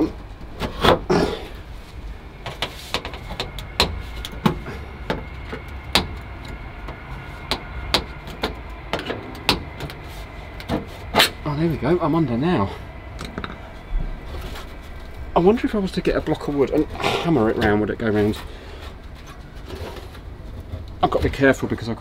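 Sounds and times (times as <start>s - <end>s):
sheet metal clicking and knocking: 2.4s - 10.0s.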